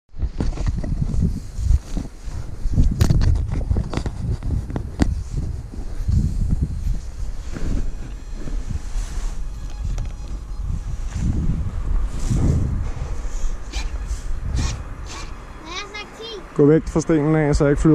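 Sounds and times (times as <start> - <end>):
wind buffeting microphone: 0.1 - 17.9.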